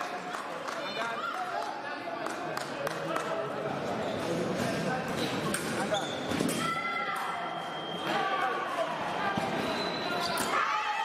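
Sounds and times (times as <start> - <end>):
shoes squeaking on floor: 5.8 - 6.6, 9.3 - 10.4.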